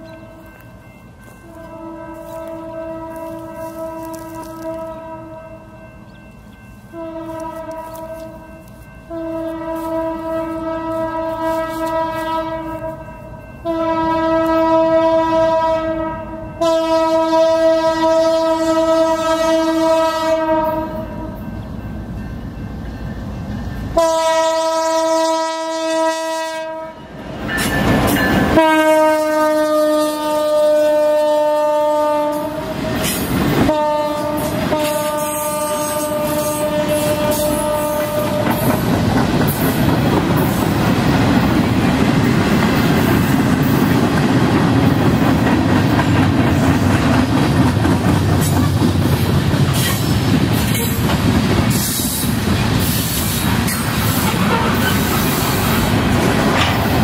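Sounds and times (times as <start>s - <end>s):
diesel locomotive horn blasts: 1.4s - 5.8s, 6.9s - 21.5s, 23.9s - 38.8s, 54.1s - 55.8s
train wheels clattering over rail joints: 38.2s - 57.0s.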